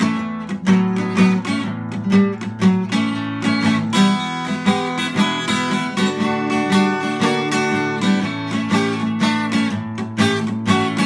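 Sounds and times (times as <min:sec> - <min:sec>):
acoustic guitar strumming blues: 0:00.0 - 0:11.0.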